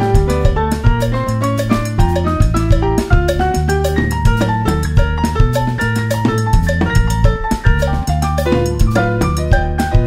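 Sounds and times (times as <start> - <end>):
drum kit hits: 0.0 - 10.0
piano notes: 0.0 - 10.0
walking bass line: 0.0 - 10.0.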